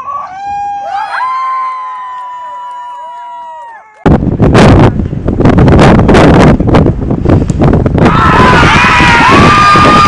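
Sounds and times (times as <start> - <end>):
spectators yelling: 8.0 - 10.0.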